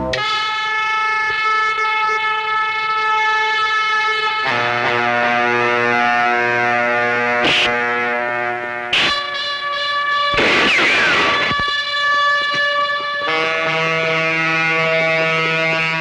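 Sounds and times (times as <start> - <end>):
horn-like orchestral chord: 4.4 - 9.5, 13.2 - 16.0
short crash: 10.4 - 11.5.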